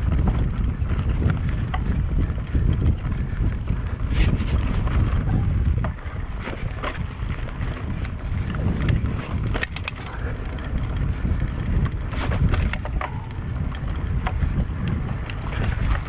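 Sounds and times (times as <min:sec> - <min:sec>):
bike rattling and clicking: 0:00.0 - 0:16.0
wind buffeting microphone: 0:00.0 - 0:16.0.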